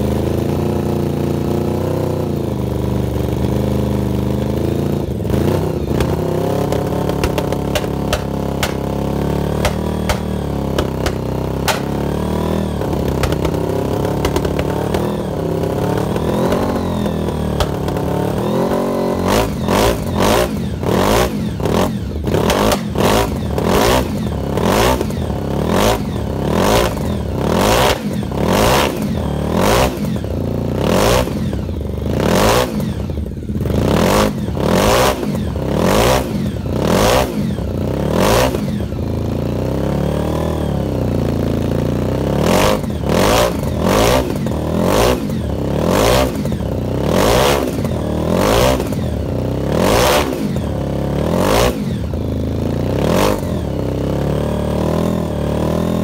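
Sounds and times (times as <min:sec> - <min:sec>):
motorcycle engine idling unevenly: 0:00.0 - 0:56.0
motorcycle engine revving: 0:00.0 - 0:56.0.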